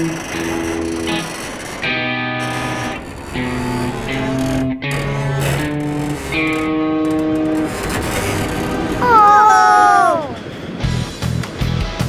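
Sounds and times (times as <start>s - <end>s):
roller coaster car on track: 0.0s - 11.7s.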